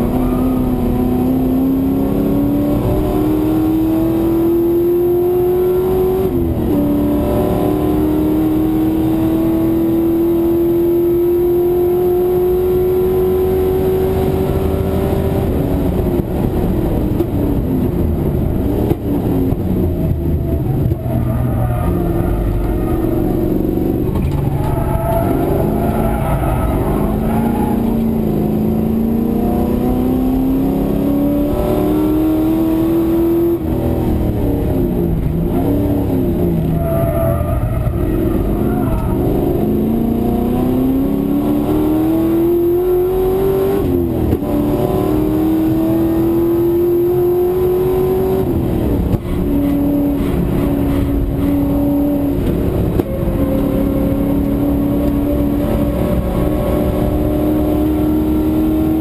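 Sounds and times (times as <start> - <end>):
race car engine revving: 0.0 - 59.0.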